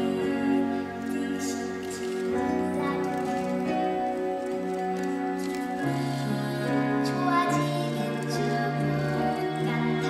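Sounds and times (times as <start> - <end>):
girl singing: 0.0 - 4.2, 6.0 - 10.0.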